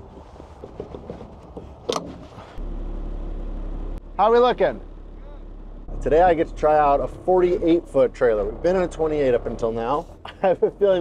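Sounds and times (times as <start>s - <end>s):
truck engine rumble: 0.0s - 11.0s.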